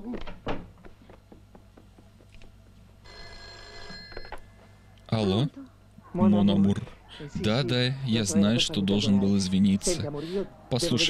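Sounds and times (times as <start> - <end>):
telephone bell ringing: 3.0 - 4.7.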